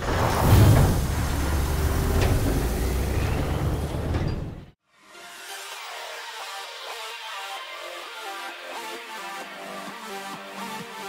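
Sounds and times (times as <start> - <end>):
diesel truck engine rumbling: 0.0 - 4.8.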